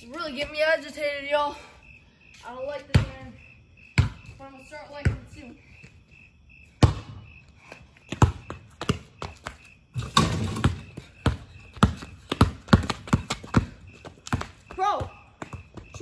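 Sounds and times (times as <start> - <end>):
basketball bouncing: 2.9 - 3.3, 4.0 - 4.3, 5.0 - 5.4, 6.8 - 7.3, 8.1 - 16.0
footsteps on pavement: 7.4 - 9.8, 10.9 - 16.0
rim and backboard clanging: 10.0 - 10.9.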